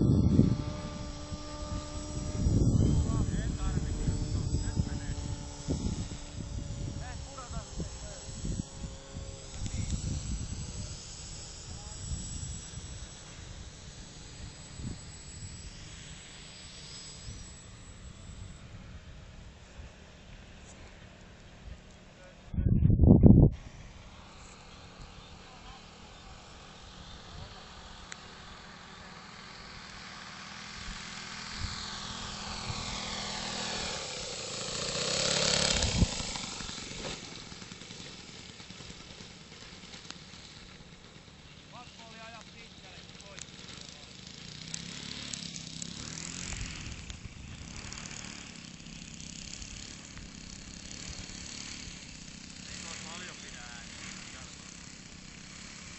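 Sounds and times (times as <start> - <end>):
wind rumbling on microphone: 0.0 - 13.7, 21.6 - 24.1, 35.6 - 36.9
model plane engine droning overhead: 0.0 - 55.9.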